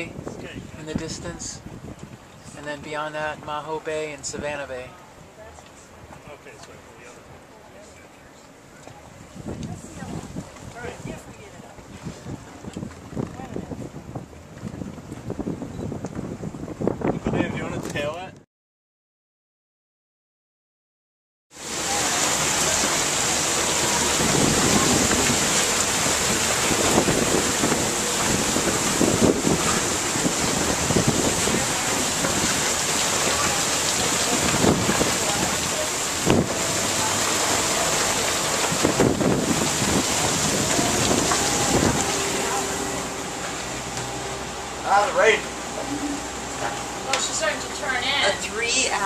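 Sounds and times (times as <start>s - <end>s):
wind buffeting microphone: 0.0s - 2.6s, 9.1s - 18.4s, 21.8s - 49.0s
rain: 0.0s - 15.6s, 21.6s - 49.0s.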